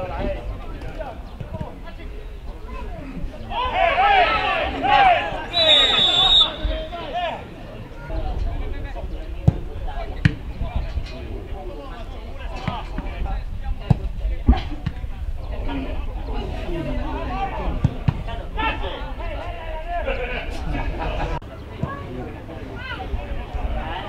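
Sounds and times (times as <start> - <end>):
players shouting: 2.7 - 7.8
whistle blast: 5.5 - 7.1
wind rumble on microphone: 8.0 - 21.4.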